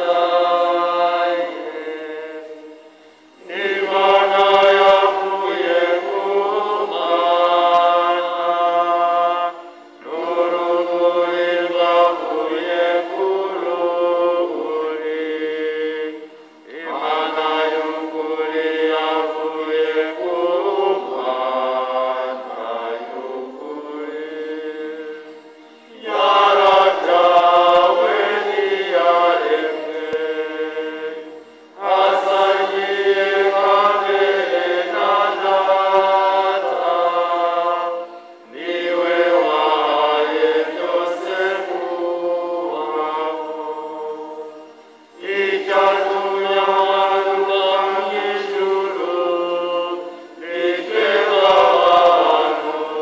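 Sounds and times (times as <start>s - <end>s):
choir singing a hymn: 0.0s - 53.0s.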